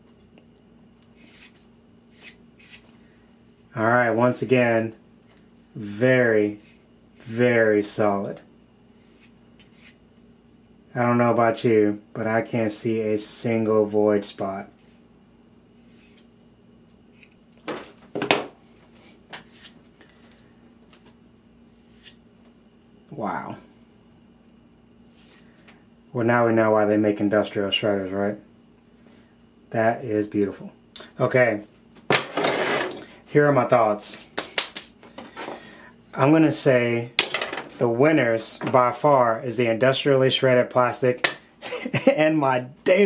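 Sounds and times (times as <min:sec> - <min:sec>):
faint steady hum: 0:00.0 - 0:43.0.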